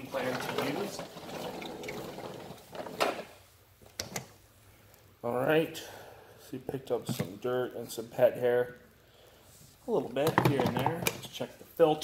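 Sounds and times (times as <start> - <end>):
faint hiss: 2.5 - 10.4.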